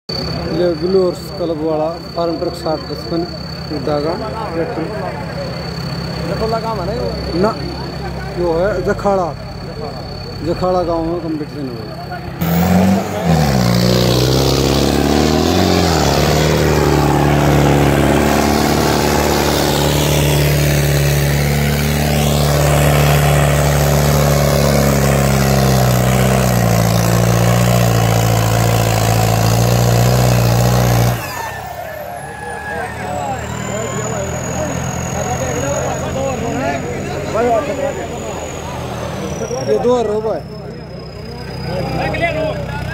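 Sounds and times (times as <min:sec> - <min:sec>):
tractor diesel engine under load: 0:00.0 - 0:42.9
crowd shouting: 0:31.3 - 0:35.0.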